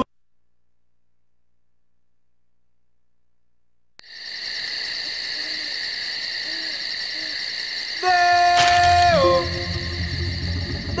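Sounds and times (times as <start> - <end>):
owl hooting: 4.8 - 11.0
steady high-pitched drone: 8.8 - 11.0.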